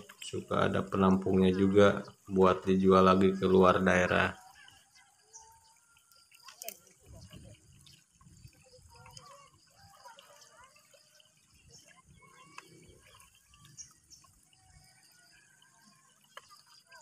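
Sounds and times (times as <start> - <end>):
water dripping: 0.0 - 17.0.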